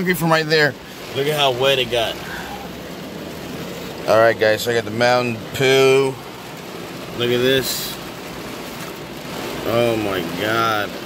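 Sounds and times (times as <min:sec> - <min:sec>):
heavy rain on car roof: 0:00.0 - 0:11.0.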